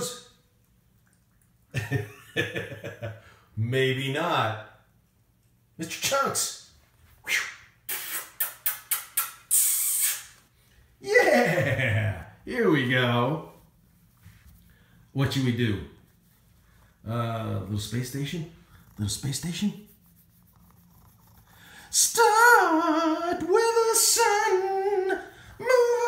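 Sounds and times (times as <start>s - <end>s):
person making hissing mouth sounds: 7.2s - 10.5s
cat whiskers rubbing on hand: 16.0s - 17.0s, 17.8s - 22.0s
person singing: 21.9s - 26.0s.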